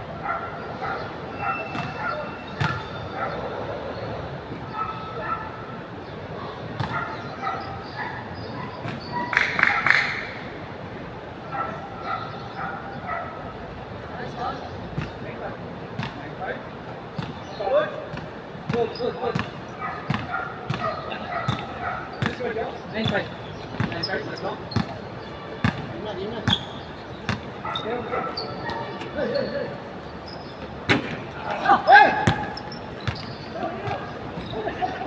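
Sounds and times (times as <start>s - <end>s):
players calling out: 17.2s - 35.0s
basketball bouncing on hard court: 18.1s - 20.9s, 21.5s - 24.1s, 24.7s - 25.0s, 25.6s - 27.5s, 32.2s - 34.1s.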